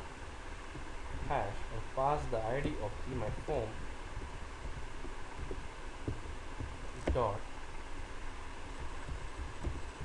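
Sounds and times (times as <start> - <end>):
microphone low hum: 0.0 - 10.0
computer keyboard typing thumps: 4.1 - 7.3, 8.9 - 10.0.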